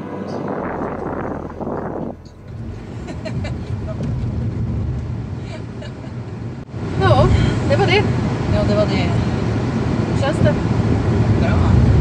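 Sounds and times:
car cabin road and engine rumble: 0.0 - 12.0
rushing noise: 0.0 - 12.0.

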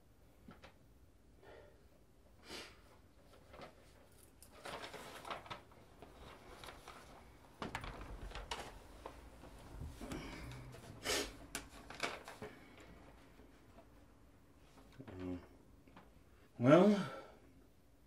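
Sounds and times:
paper rustling: 3.2 - 13.9
man sitting in upholstered chair: 16.6 - 17.4.

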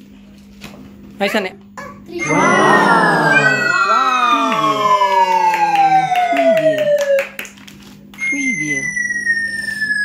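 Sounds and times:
swooping voice sample: 2.2 - 5.4
quick claps and clicks: 4.5 - 8.2.

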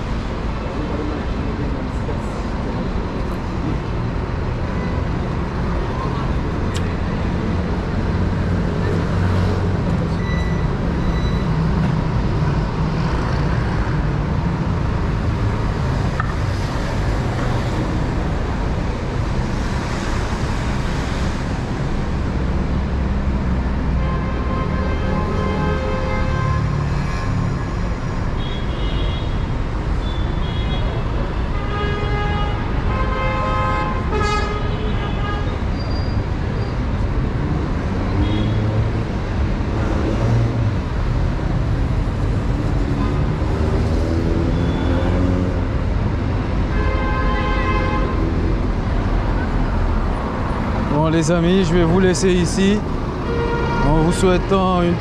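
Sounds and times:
street traffic rumble: 0.0 - 55.0.

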